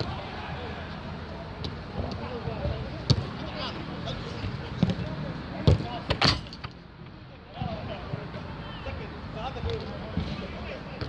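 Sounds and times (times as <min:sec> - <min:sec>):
players' voices: 0:00.0 - 0:11.0
football kick thuds: 0:02.0 - 0:03.3, 0:04.4 - 0:06.2.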